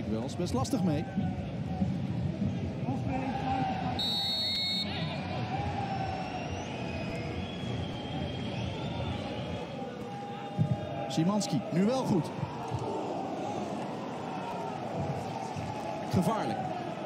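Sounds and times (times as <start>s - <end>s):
referee's whistle blast: 4.0s - 5.1s.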